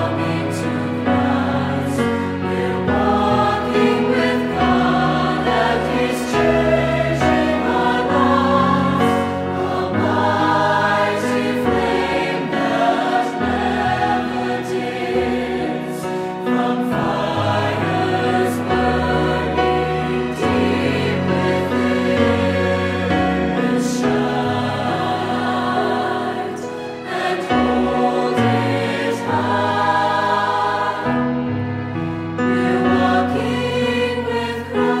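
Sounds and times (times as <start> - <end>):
choir singing slow religious song: 0.0 - 35.0.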